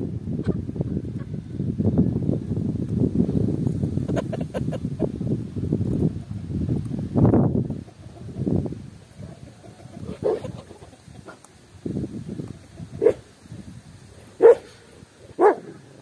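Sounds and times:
dog barking: 13.0s - 13.2s, 14.4s - 14.7s, 15.4s - 15.7s.

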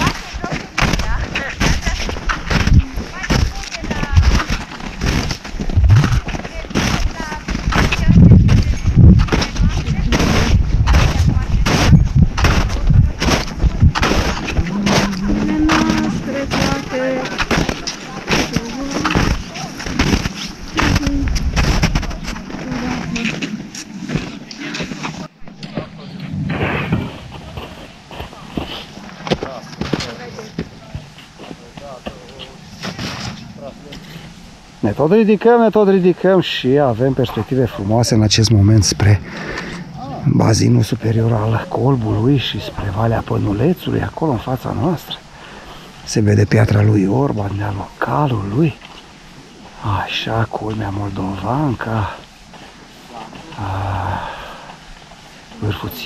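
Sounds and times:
footsteps crunching in snow: 0.0s - 35.0s, 45.8s - 56.0s
wind rumbling on microphone: 0.0s - 35.6s
faint voices: 14.4s - 35.0s.

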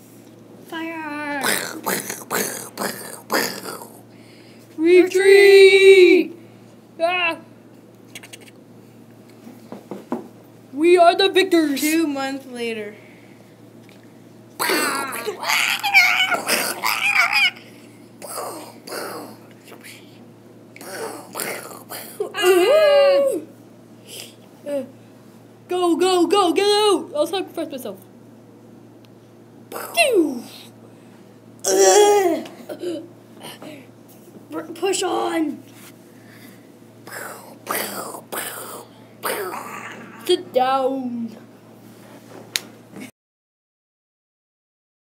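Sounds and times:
breathy wordless vocal sounds: 1.4s - 4.5s, 17.5s - 19.5s, 20.8s - 22.4s
child crying: 14.6s - 19.4s, 22.2s - 23.5s, 31.7s - 33.0s, 39.3s - 40.3s.

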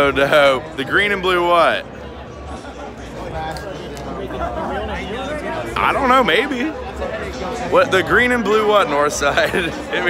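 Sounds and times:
indistinct chatter of voices: 0.0s - 10.0s
low background hum of hall: 0.0s - 10.0s.

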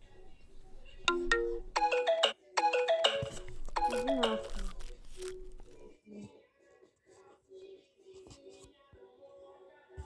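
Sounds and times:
electronic ringtone melody: 1.1s - 4.6s.

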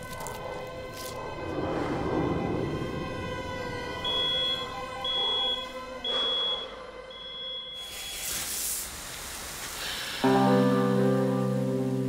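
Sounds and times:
low drone: 0.0s - 7.5s
electronic alarm beeping: 4.0s - 8.2s
burst of hiss: 7.8s - 10.7s.

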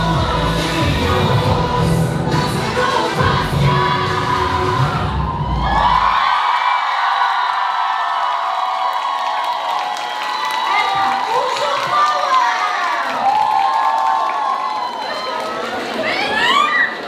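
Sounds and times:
pop dance track with bass beat: 0.0s - 5.1s
audience cheering and whooping: 3.8s - 17.0s.

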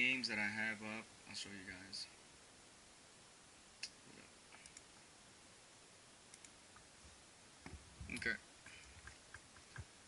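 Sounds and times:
faint computer clicks: 3.8s - 5.0s, 6.3s - 6.9s.

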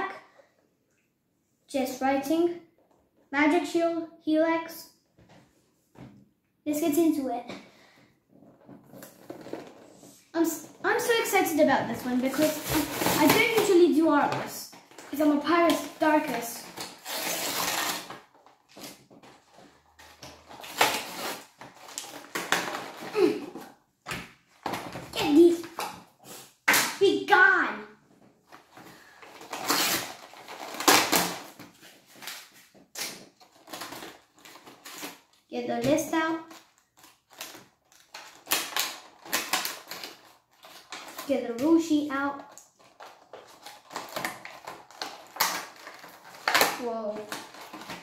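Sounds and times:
plastic packaging crinkling: 8.5s - 10.1s, 14.7s - 23.4s, 28.5s - 35.5s, 36.5s - 41.4s, 42.2s - 48.0s.

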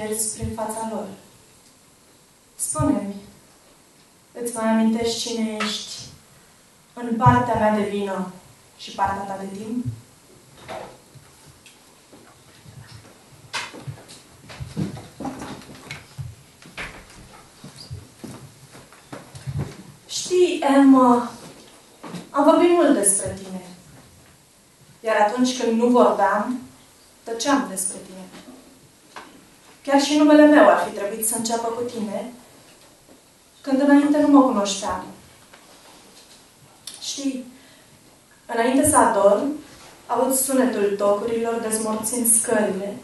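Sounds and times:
person reading aloud: 0.0s - 1.3s, 2.6s - 3.4s, 4.4s - 6.2s, 7.0s - 10.0s, 19.5s - 21.6s, 22.4s - 23.8s, 25.0s - 26.7s, 27.3s - 28.5s, 29.9s - 32.4s, 33.7s - 35.2s, 36.9s - 37.5s, 38.5s - 43.0s.

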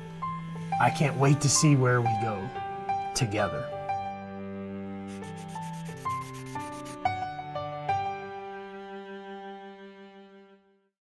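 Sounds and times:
background music with held notes: 0.0s - 10.9s
pencil scribbling: 5.1s - 7.1s.

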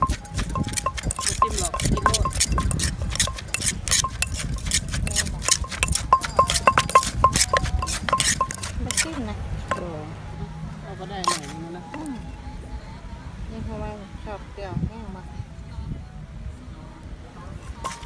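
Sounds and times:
wooden pestle pounding mortar: 0.0s - 9.8s, 11.3s - 11.5s.

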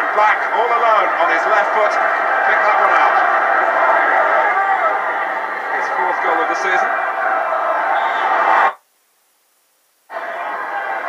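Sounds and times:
stadium crowd din: 0.0s - 8.8s, 10.1s - 11.0s.

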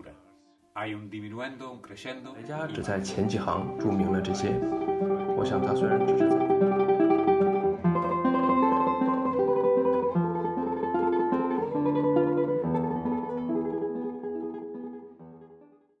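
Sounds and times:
plucked guitar melody: 0.0s - 15.9s.

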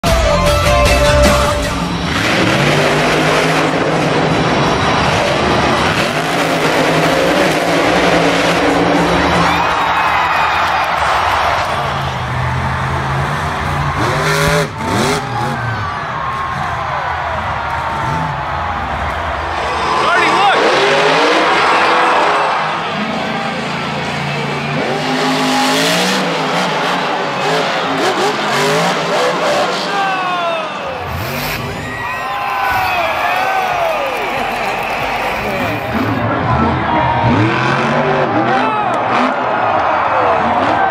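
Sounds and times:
arena noise: 0.0s - 40.9s
monster truck engines revving: 1.0s - 40.9s.

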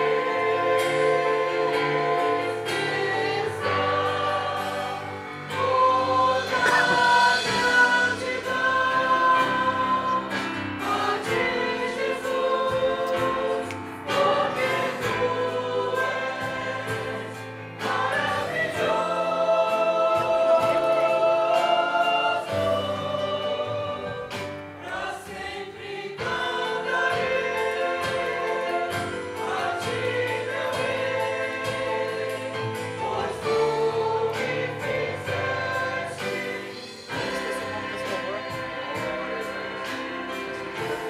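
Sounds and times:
group singing worship song: 0.0s - 41.0s
violins: 0.0s - 41.0s.

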